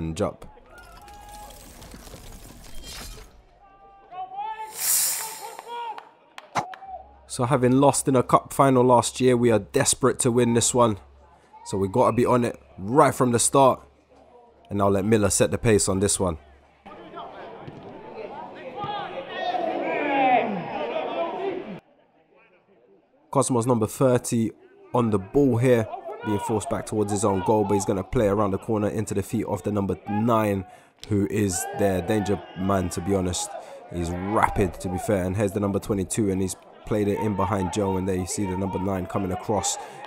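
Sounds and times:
footballers shouting: 3.6s - 7.2s, 16.9s - 21.8s, 24.6s - 40.0s
hissing swoosh: 4.7s - 5.6s.

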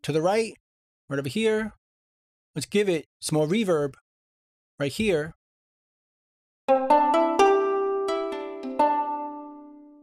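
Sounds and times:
plucked guitar notes with reverb: 6.7s - 10.0s.

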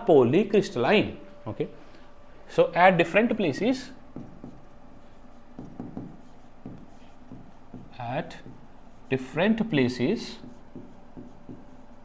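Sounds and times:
stylus scratching on writing board: 4.1s - 12.0s.

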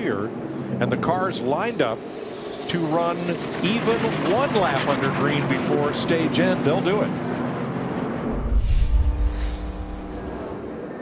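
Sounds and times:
steady held tone: 8.2s - 10.9s
deep boom: 8.3s - 10.6s.

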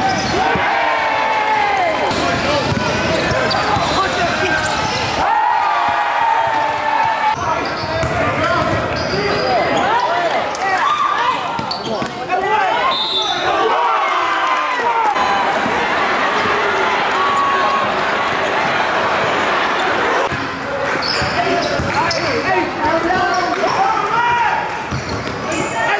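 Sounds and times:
sneaker squeaks: 0.0s - 0.4s, 2.6s - 5.2s, 7.3s - 10.1s, 11.5s - 12.2s, 21.0s - 22.5s, 24.9s - 25.9s
people shouting: 0.0s - 2.1s, 3.8s - 7.5s, 12.3s - 20.3s.

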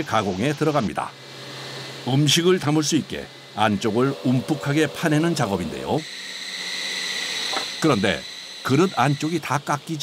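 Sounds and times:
stone grinding machine whine: 0.0s - 10.0s.

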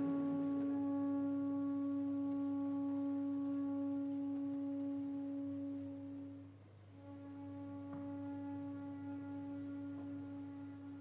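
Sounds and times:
orchestra holding soft note: 0.0s - 11.0s.

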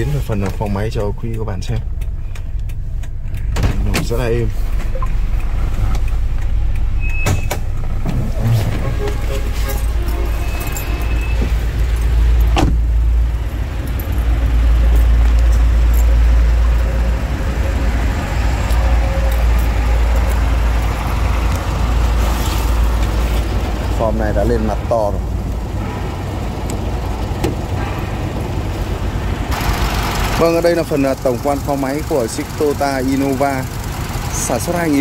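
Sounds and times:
car engine idling: 0.0s - 35.0s
car door slam: 12.5s - 12.9s.

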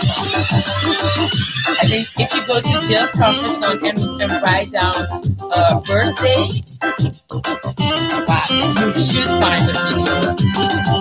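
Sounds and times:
deep repeating bass line: 0.0s - 11.0s
electronic hip-hop music: 0.0s - 11.0s.

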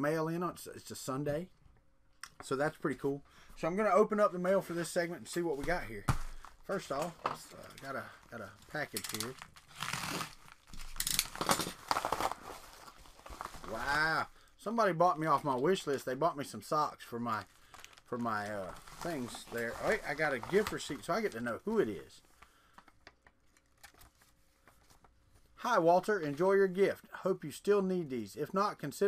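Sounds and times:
paper crinkling: 5.5s - 14.3s, 17.3s - 25.6s
paper envelope tearing: 8.8s - 14.1s.

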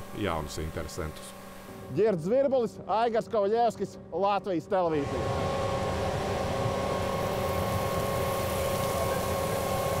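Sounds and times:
truck engine and pump running: 0.0s - 2.0s, 5.0s - 10.0s
fire hose jet hissing: 7.2s - 10.0s.

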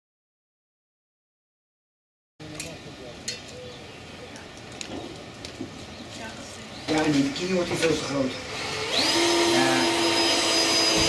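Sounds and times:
distant voices: 2.4s - 11.0s
knocks on wooden shed roof: 10.8s - 11.0s.

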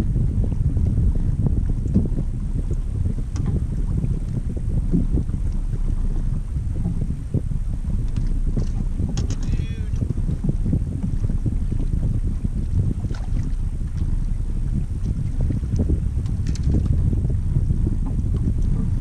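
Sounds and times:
wind buffeting microphone: 0.0s - 19.0s
faint clicks: 8.1s - 9.6s.

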